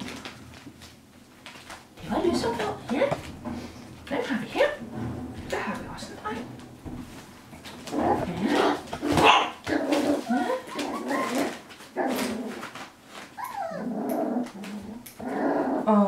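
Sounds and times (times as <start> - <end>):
puppies barking and growling: 7.6 - 16.0.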